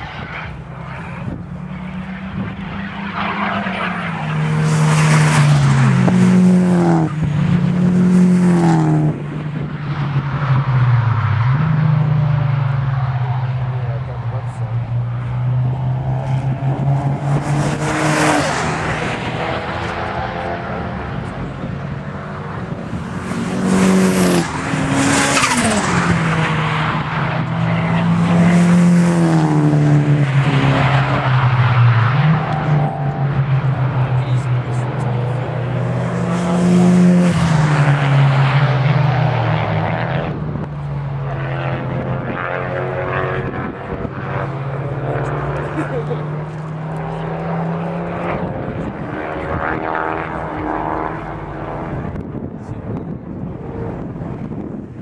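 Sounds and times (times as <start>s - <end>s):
race cars revving past: 0.0s - 55.0s.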